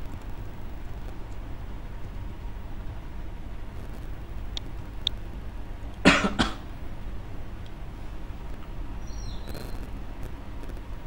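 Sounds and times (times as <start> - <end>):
person coughing: 6.0 - 6.6.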